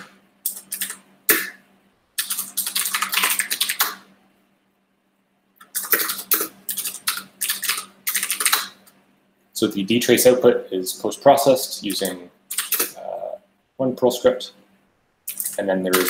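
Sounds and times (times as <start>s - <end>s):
fast typing on keyboard: 0.5s - 1.0s, 2.2s - 4.0s, 5.7s - 8.7s, 12.5s - 12.9s, 15.3s - 16.0s.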